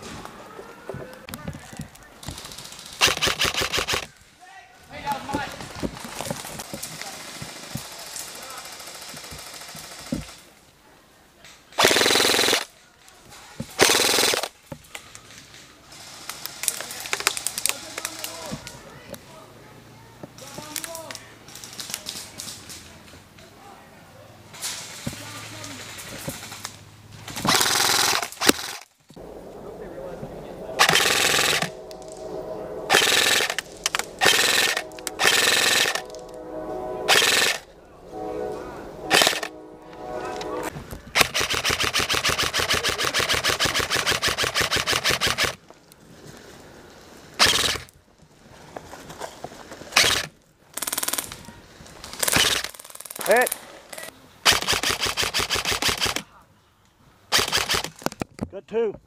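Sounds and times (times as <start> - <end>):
airsoft rifles firing bursts: 2.3 - 4.1, 11.8 - 12.7, 13.8 - 14.5, 57.3 - 58.0.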